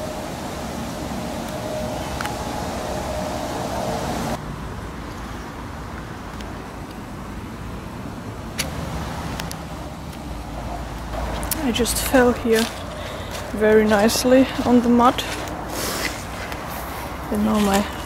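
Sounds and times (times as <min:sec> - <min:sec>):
low rumbling outdoor noise: 0:00.0 - 0:18.0.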